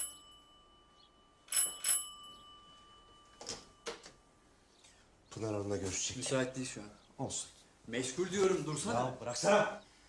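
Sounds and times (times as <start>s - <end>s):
doorbell ringing: 0.0s - 4.6s.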